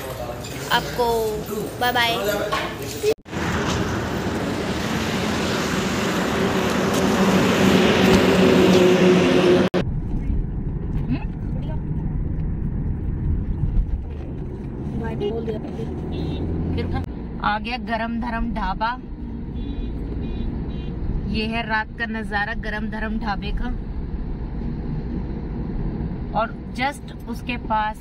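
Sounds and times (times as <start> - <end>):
car engine and road noise: 0.0 - 28.0.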